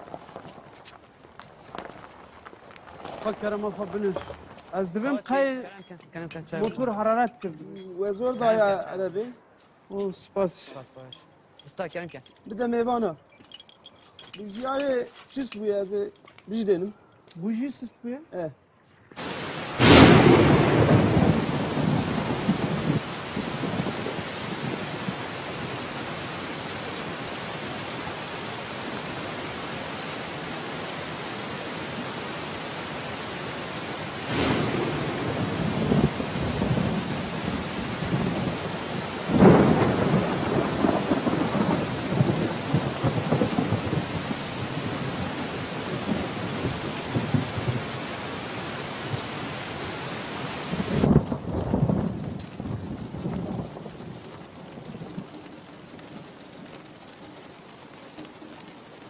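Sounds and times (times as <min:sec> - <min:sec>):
steady rain: 0:00.0 - 0:11.1, 0:11.7 - 0:18.5, 0:19.1 - 0:59.0
rolling thunder: 0:19.2 - 0:29.4, 0:34.0 - 0:50.0, 0:50.6 - 0:59.0.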